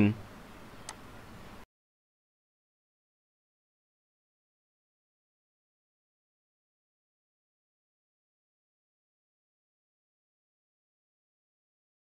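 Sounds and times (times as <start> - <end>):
faint background hiss: 0.0 - 1.6.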